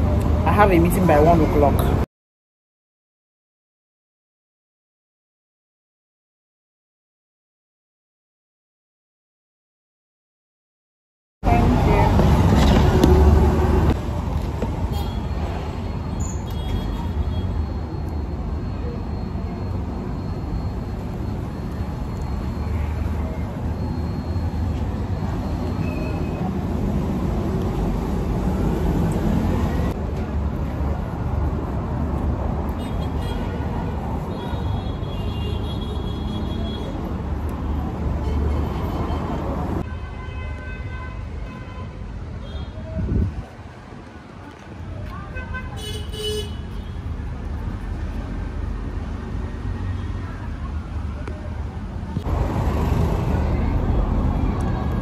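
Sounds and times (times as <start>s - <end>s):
road traffic noise: 0.0s - 2.1s, 11.4s - 55.0s
car horns tooting: 45.3s - 46.9s.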